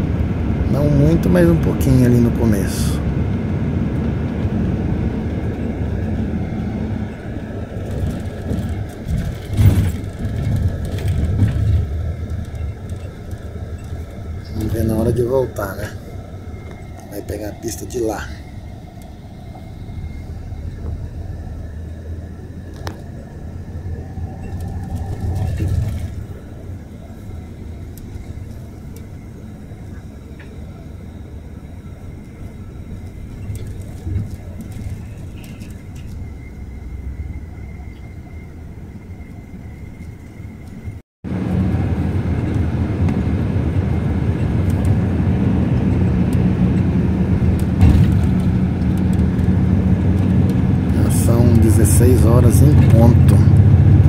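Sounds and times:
bus engine hum: 0.0 - 54.0
road rumble: 0.0 - 54.0.

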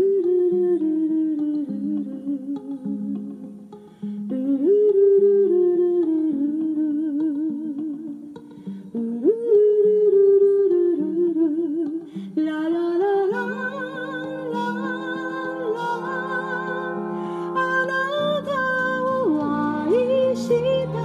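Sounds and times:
soft instrumental accompaniment: 0.0 - 21.0.

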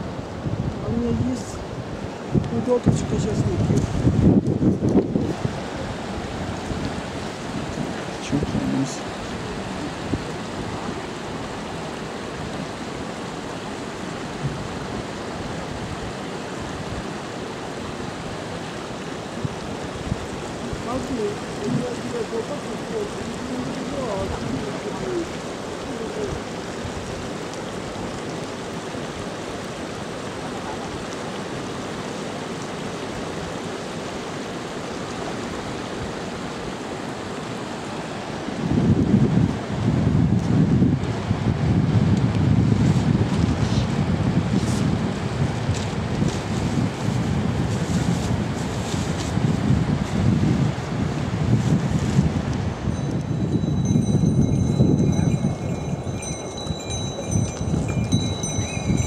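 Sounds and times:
wind gusting against microphone: 0.0 - 59.0
yak bells ringing: 52.9 - 59.0.

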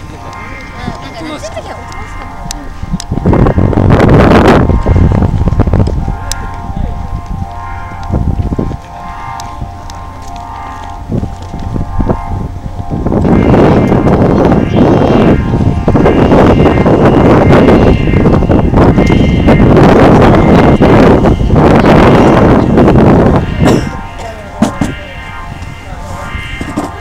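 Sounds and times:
faint steady tones: 0.0 - 27.0
low rumble: 0.0 - 27.0
gusty rushing air: 2.7 - 7.5, 11.0 - 26.7.

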